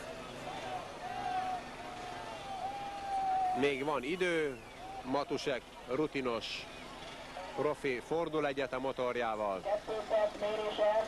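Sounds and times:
motorcycle engines running: 0.0s - 11.0s.

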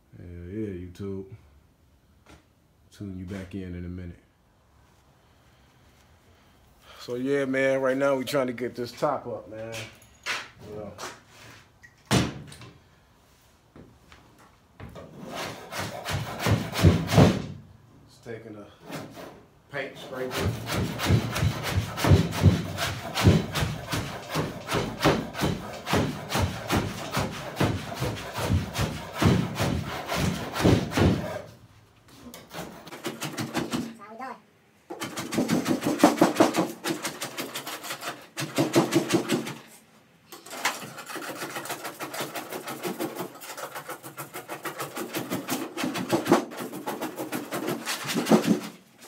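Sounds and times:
hand tool scraping vinyl: 15.0s - 17.4s, 18.8s - 34.0s, 34.9s - 39.8s, 40.4s - 49.0s.

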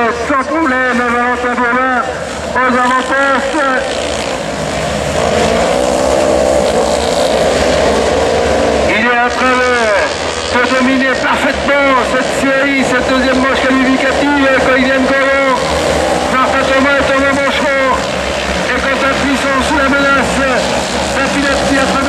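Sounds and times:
distorted announcer over loudspeaker: 0.0s - 22.0s
race car engines: 0.0s - 22.0s.

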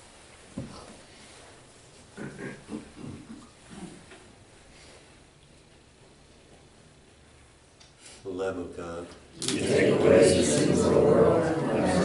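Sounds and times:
murmured human voice: 2.2s - 4.2s, 9.4s - 12.0s.

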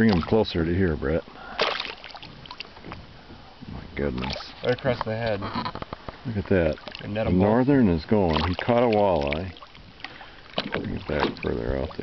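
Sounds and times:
fish splashing in water: 1.4s - 3.2s, 4.1s - 12.0s.

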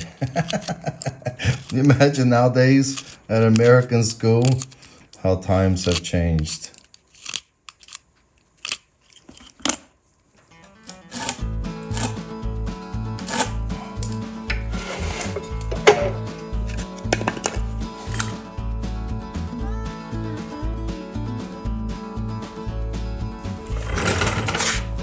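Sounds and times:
background music with steady beat: 10.5s - 25.0s
razor blade shaving pencil: 11.0s - 12.2s, 13.2s - 14.0s.

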